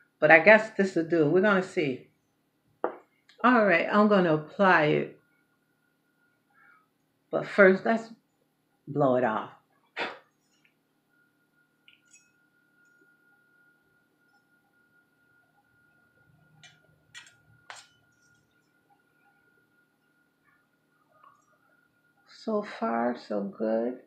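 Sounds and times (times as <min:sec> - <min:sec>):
faint steady high tone: 0:10.4 - 0:24.0.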